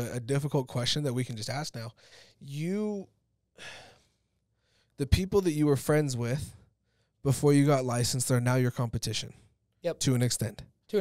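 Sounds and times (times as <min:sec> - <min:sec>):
man sighing: 0:03.6 - 0:04.1.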